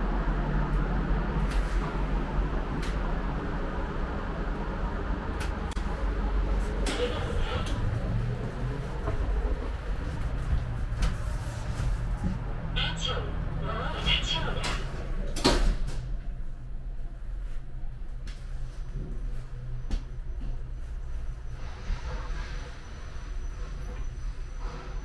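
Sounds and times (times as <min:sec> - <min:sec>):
elevator low hum: 0:00.0 - 0:25.0
elevator doors sliding: 0:00.7 - 0:16.4.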